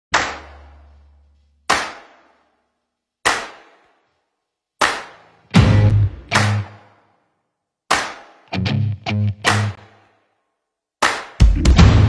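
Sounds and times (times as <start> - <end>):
sharp percussive hits: 0.1 - 2.4, 3.2 - 4.0, 4.8 - 7.0.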